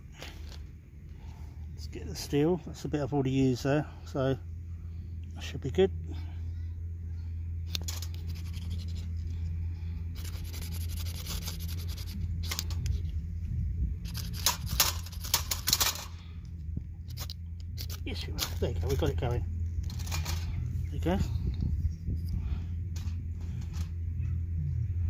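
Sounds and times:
striker scraping ferro rod: 7.7s - 9.2s, 10.2s - 13.1s
wind rumble on microphone: 11.4s - 25.0s.

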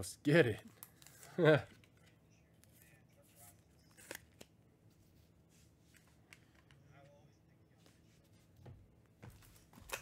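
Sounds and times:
trading cards clicking and rustling: 3.5s - 4.6s, 9.3s - 10.0s.

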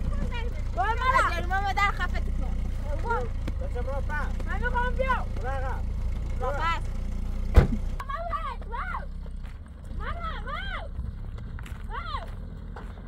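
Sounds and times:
raised voices talking: 0.0s - 7.0s, 9.9s - 11.0s
car engine idling: 0.0s - 13.0s.

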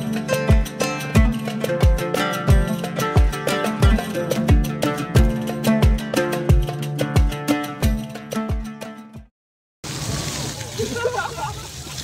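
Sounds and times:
music: 0.0s - 9.3s
fountain water splashing: 9.8s - 12.0s
people talking: 10.6s - 12.0s.

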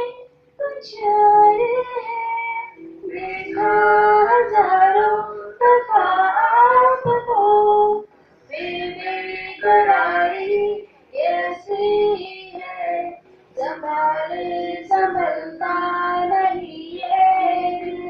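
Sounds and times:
person singing into a microphone: 0.0s - 18.0s.

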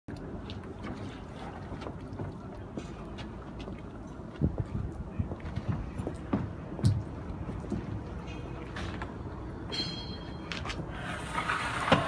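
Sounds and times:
wind on microphone: 4.4s - 6.5s.

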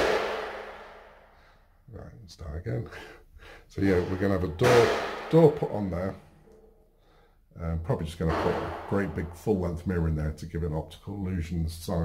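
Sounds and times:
heavy thump ringing out: 3.8s - 5.9s, 8.3s - 9.4s.

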